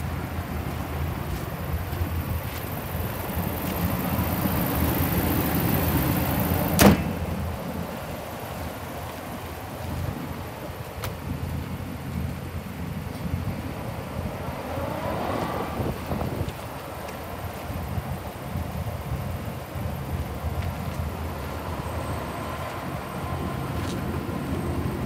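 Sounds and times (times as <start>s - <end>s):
steady low rumble: 0.0s - 14.8s
truck hood slamming shut: 6.7s - 7.4s
wind on microphone: 13.3s - 16.9s.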